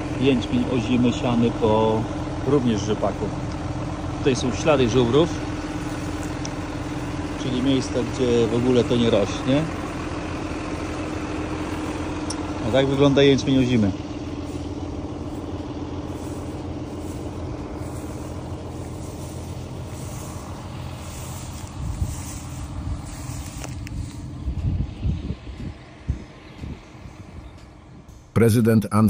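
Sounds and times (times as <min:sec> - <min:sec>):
engine idling hum: 0:00.0 - 0:29.0
low rumbling and thumps: 0:03.1 - 0:28.4.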